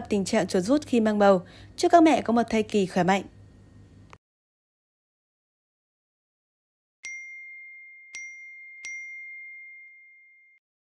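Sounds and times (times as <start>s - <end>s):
bell ding: 7.0s - 10.6s.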